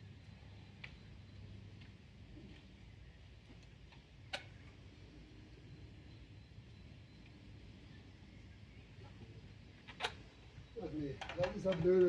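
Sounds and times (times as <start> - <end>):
faint ticks: 0.6 - 1.1, 1.7 - 2.7.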